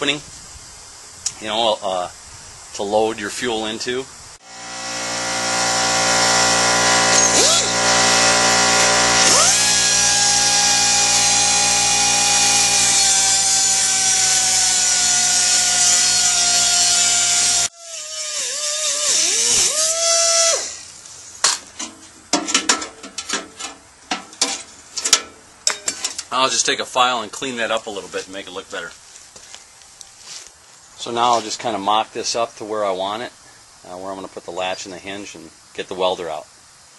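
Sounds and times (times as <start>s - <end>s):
cut-off wheel grinding steel: 4.4s - 21.0s.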